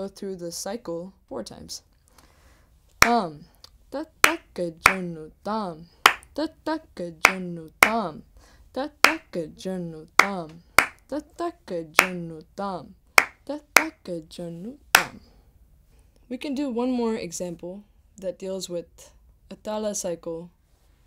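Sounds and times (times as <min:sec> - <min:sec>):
voice chanting drum syllables: 0:04.0 - 0:08.2, 0:08.8 - 0:14.2
hand claps and taps: 0:04.2 - 0:05.0, 0:06.1 - 0:06.3, 0:09.0 - 0:09.3, 0:10.2 - 0:11.0, 0:12.0 - 0:12.2, 0:13.2 - 0:14.0, 0:15.0 - 0:15.2.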